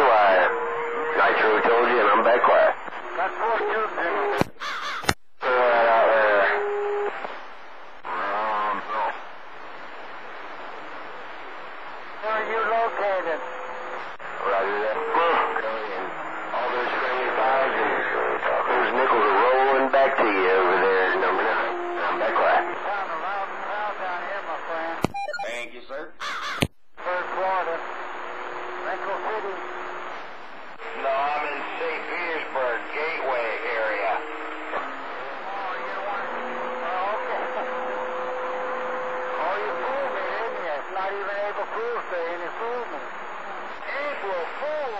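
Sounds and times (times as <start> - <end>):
voices through radio speaker: 0.0 - 44.9
sharp radio clicks: 4.4 - 5.2.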